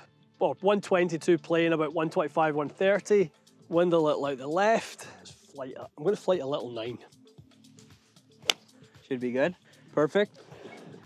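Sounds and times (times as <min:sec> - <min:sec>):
quiet background music: 0:00.0 - 0:11.0
golf club striking ball: 0:08.4 - 0:08.7.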